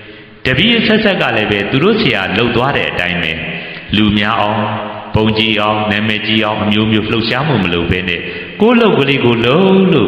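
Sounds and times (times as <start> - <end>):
monk chanting: 0.4 - 10.0.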